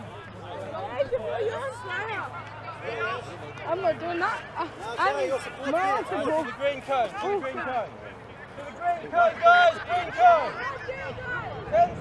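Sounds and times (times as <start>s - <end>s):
players calling out: 0.1s - 12.0s.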